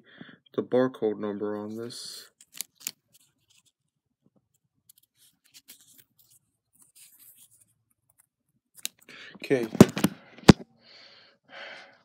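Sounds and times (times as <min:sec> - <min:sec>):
phone handling rustles: 0:08.8 - 0:10.6.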